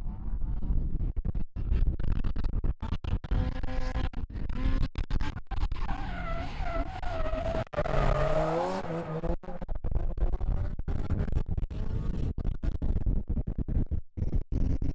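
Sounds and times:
wind rumble on microphone: 0.0 - 6.1, 9.5 - 14.9
tyres skidding and squealing: 5.9 - 9.2
car engine revving: 7.2 - 9.4.

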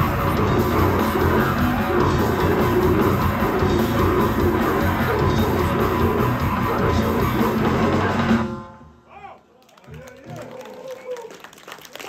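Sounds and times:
audience voices: 0.0 - 8.5
live metal band playing: 0.0 - 8.8
scattered claps: 9.6 - 12.0.

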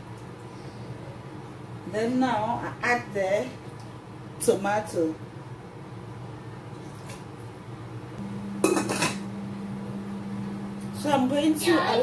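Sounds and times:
pot lid clattering: 8.6 - 9.2.

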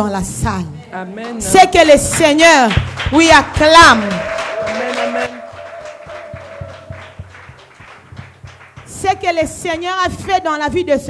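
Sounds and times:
audience clapping along: 1.2 - 10.5
background music with steady beat: 5.4 - 10.9.

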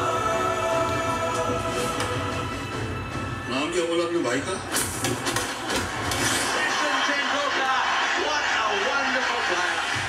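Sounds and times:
trailer music: 0.0 - 6.4
stadium crowd noise: 5.1 - 10.0
commentator speaking: 6.6 - 10.0.

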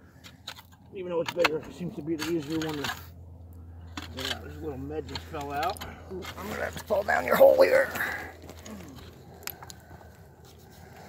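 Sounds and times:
soil crunching and scraping: 0.0 - 11.0.

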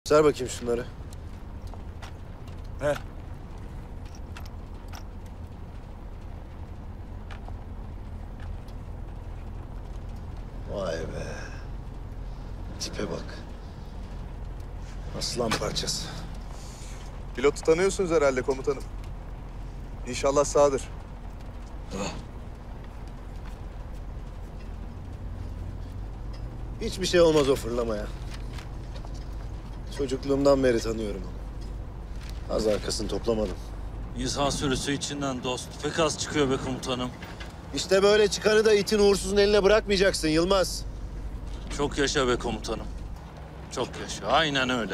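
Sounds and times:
vehicle engine rumble: 0.0 - 44.9.

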